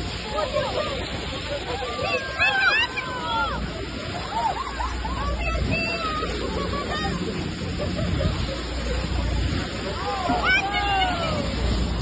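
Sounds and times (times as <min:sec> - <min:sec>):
hubbub of voices: 0:00.0 - 0:12.0
steady low rumble: 0:00.0 - 0:12.0
water rushing off boat bow: 0:00.0 - 0:12.0.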